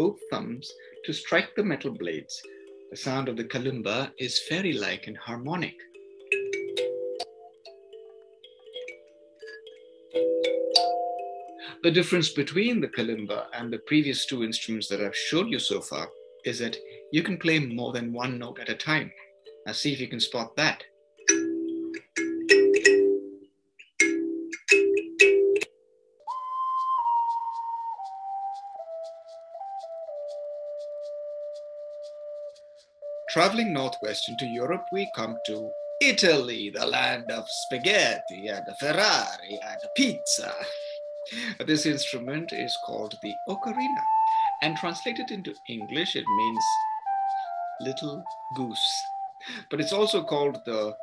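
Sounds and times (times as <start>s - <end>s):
kalimba notes ringing: 0.0s - 25.7s, 33.1s - 51.0s
whistle-like tone stepping down: 26.3s - 32.5s, 34.7s - 51.0s.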